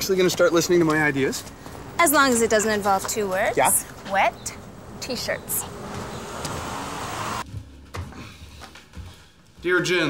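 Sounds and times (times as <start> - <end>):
car passing: 0.0 - 7.4.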